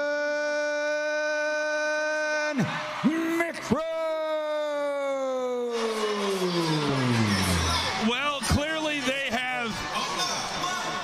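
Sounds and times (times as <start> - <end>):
announcer holding a long note: 6.5 - 8.0.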